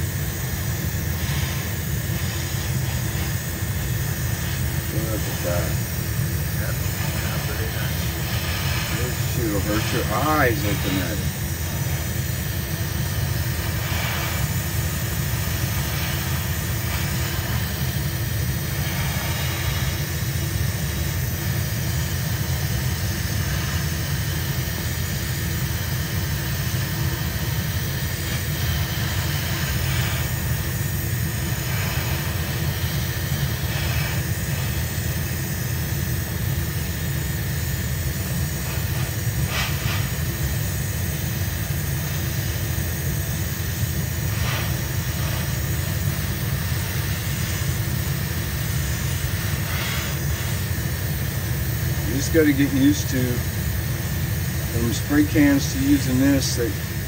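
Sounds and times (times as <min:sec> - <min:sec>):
airbrush hissing: 0:00.0 - 0:57.0
exhaust fan droning: 0:00.0 - 0:57.0.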